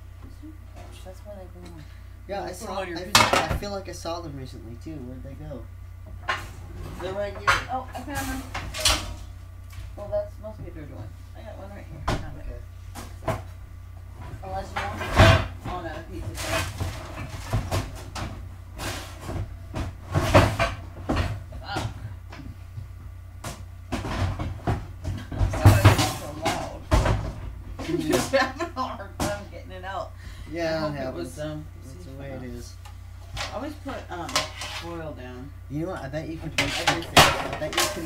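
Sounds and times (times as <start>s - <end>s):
metal baking pans banging: 3.1s - 3.7s, 23.9s - 28.6s, 36.4s - 38.0s.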